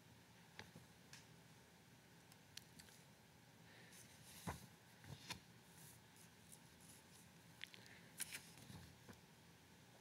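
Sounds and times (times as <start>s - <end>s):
book pages rustling: 4.0s - 7.3s, 8.2s - 9.2s.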